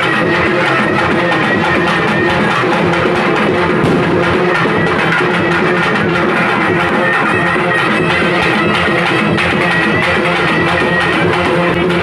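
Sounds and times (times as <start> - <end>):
folk drum ensemble playing: 0.0 - 12.0.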